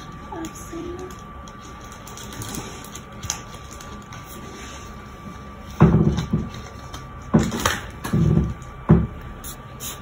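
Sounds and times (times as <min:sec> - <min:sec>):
background hum and hiss: 0:00.0 - 0:10.0.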